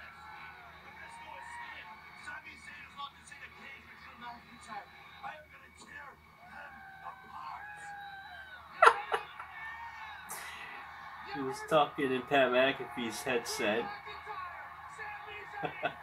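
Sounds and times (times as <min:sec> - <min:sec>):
faint voices: 0:00.0 - 0:16.0
man laughing: 0:08.8 - 0:09.4.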